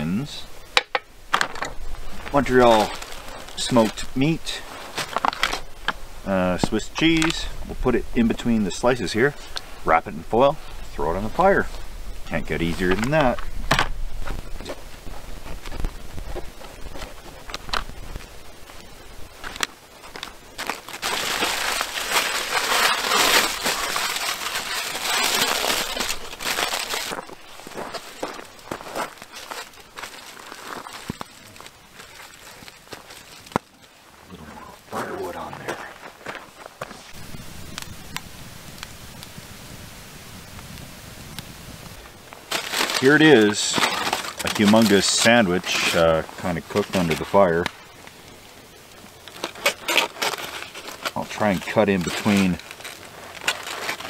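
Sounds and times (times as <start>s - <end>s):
aluminium foil crinkling: 0.9s - 34.1s, 42.0s - 54.0s.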